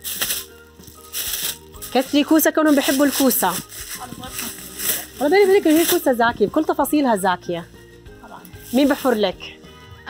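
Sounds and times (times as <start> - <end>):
plastic bags crinkling: 0.0 - 6.6, 8.6 - 9.3
soft background music: 0.0 - 10.0.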